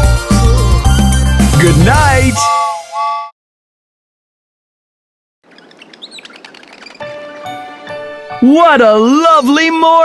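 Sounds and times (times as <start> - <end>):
birds chirping and whistling: 5.4 - 8.2.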